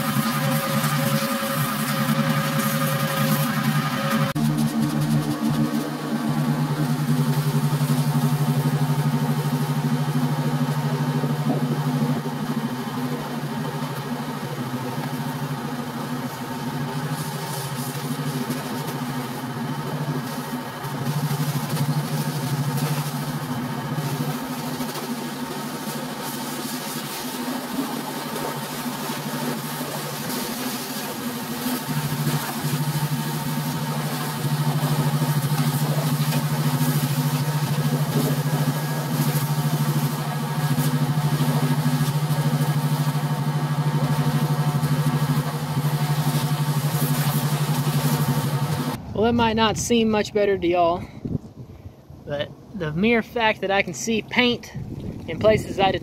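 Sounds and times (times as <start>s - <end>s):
water spray hitting metal: 0.0s - 49.0s
pressure washer drone: 0.0s - 50.2s.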